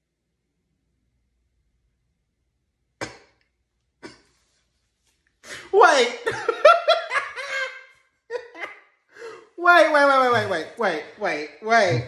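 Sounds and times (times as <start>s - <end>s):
stifled laugh: 5.5s - 8.7s.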